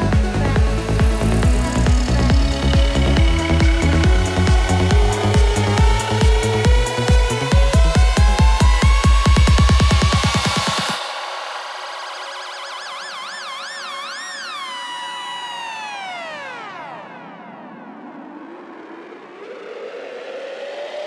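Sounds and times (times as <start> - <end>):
rising synth sweep: 0.0 - 21.0
wavering synth tone: 0.0 - 21.0.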